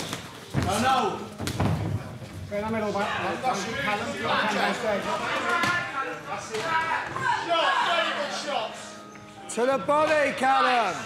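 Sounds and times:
voices shouting: 3.1s - 8.9s.

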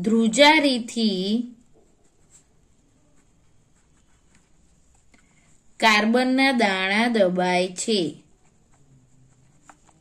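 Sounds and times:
pen scratching on paper: 0.1s - 5.1s, 8.2s - 10.0s.

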